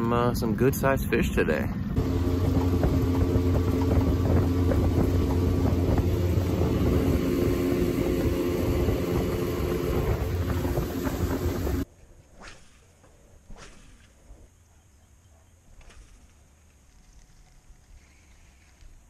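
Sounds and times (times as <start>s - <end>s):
rushing wind: 0.0s - 14.4s
outboard motor running: 1.9s - 11.8s
water rushing: 2.0s - 11.8s.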